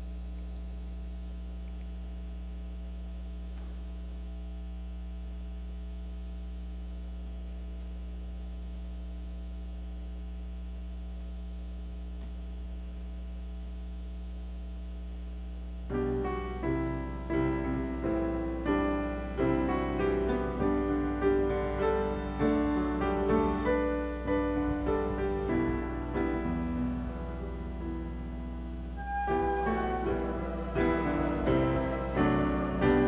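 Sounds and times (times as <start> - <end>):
electrical mains hum: 0.0 - 33.0.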